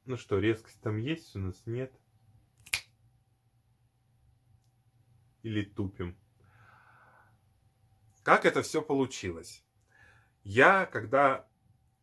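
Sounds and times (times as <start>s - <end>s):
sharp click: 2.6s - 2.9s.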